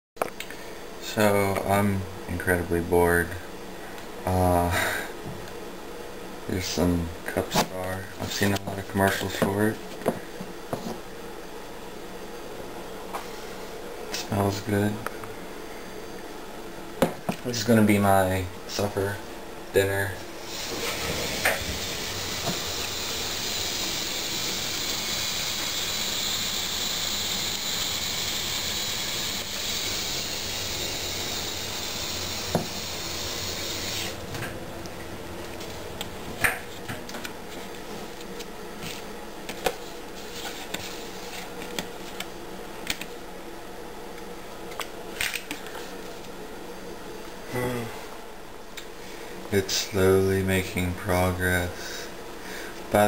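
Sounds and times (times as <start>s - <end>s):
hot water pouring into cup: 20.5s - 34.2s.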